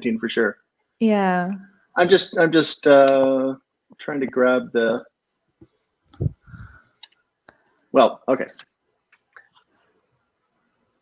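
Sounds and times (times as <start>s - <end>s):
faint clicks: 6.8s - 9.8s.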